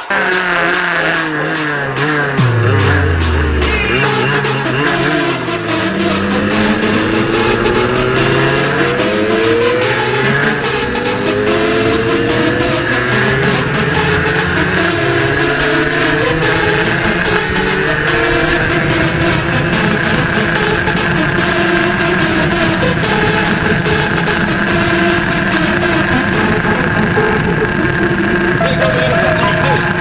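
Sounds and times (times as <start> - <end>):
electronic dance music: 0.0 - 30.0
motorcycle engine accelerating: 0.0 - 30.0.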